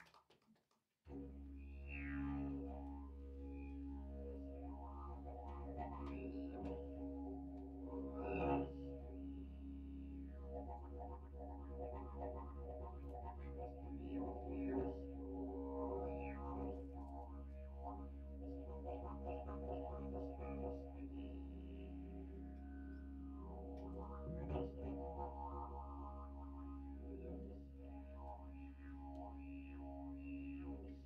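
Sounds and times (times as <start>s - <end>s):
didgeridoo drone: 1.1s - 31.0s.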